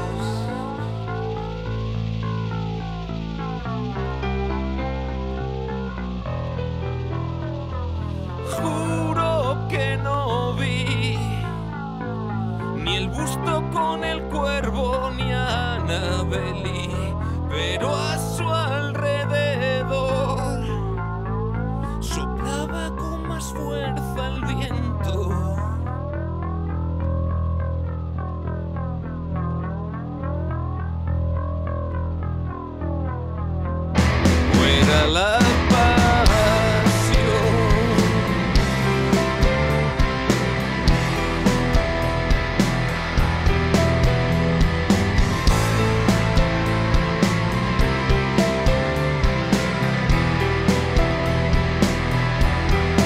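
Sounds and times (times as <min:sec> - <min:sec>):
bass guitar: 0:00.0 - 0:53.0
guitar: 0:00.0 - 0:53.0.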